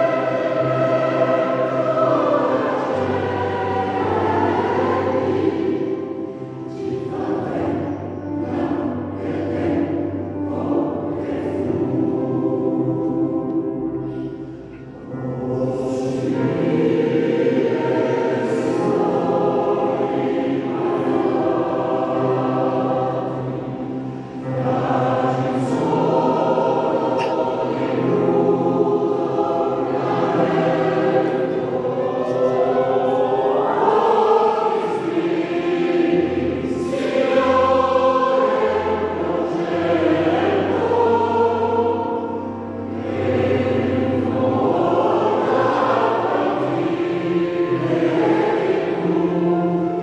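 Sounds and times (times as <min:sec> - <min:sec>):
mixed choir singing: 0:00.0 - 0:50.0.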